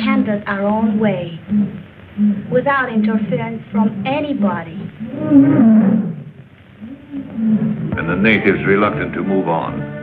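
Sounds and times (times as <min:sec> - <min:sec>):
lion roaring: 0:03.8 - 0:08.5.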